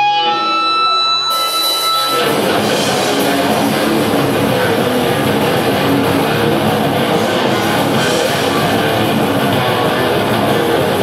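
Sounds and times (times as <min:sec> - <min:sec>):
live heavy metal band: 0:00.0 - 0:11.0.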